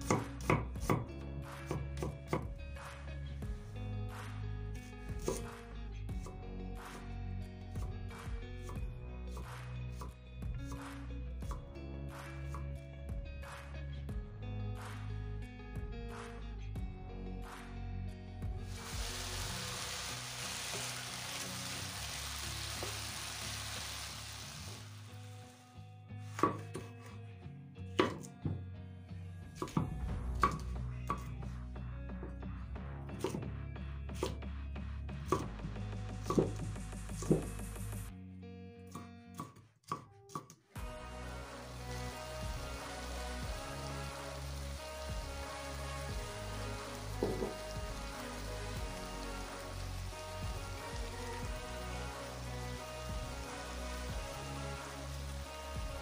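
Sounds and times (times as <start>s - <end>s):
knife chopping on wooden board: 0.0s - 1.1s, 5.2s - 5.5s, 26.3s - 27.1s, 28.0s - 28.6s
background music: 0.0s - 56.0s
food sizzling in a pan: 18.6s - 25.8s, 40.8s - 56.0s.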